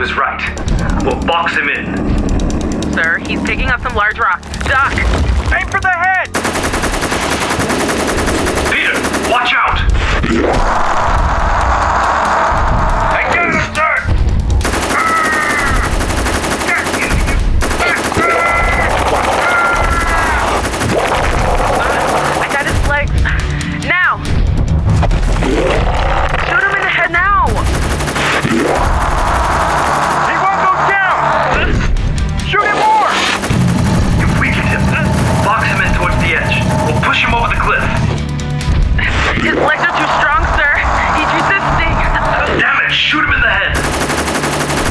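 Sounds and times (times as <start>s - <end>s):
music: 0.0s - 44.9s
rapid automatic gunfire: 0.6s - 4.8s, 6.2s - 10.0s, 14.6s - 23.6s, 27.5s - 31.4s, 32.7s - 38.2s, 39.4s - 44.9s
voices shouting: 14.8s - 20.8s, 28.0s - 33.2s, 39.4s - 43.3s.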